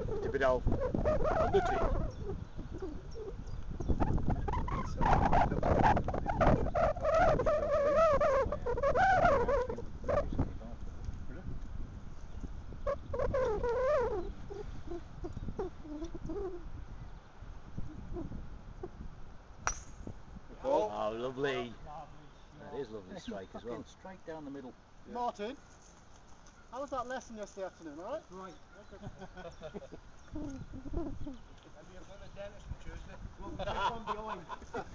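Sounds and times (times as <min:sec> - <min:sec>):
indistinct voices: 0:00.0 - 0:03.3
golf club striking ball: 0:19.6 - 0:20.2.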